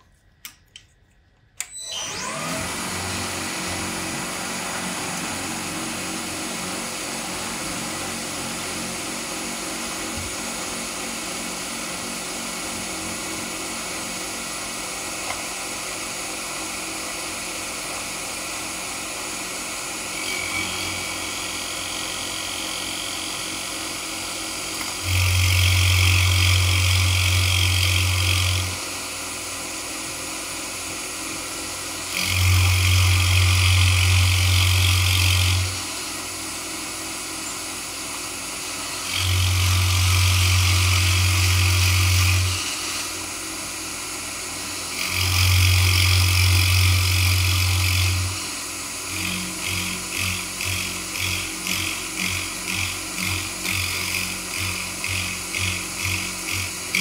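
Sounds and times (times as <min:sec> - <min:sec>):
milling machine cutting wood: 0:01.6 - 0:57.0
spindle running: 0:31.7 - 0:57.0.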